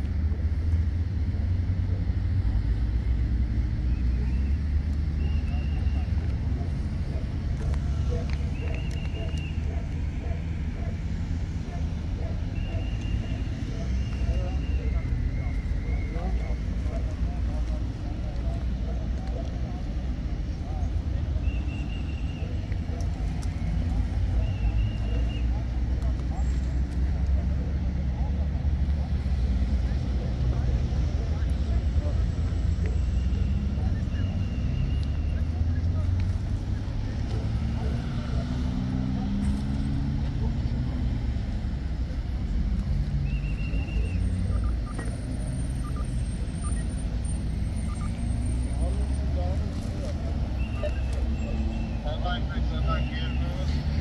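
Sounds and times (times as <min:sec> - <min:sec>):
road traffic rumble: 0:00.0 - 0:54.0.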